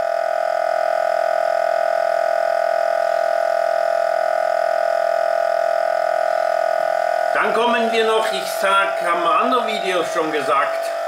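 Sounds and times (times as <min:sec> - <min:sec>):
compressor electric whine: 0:00.0 - 0:11.0.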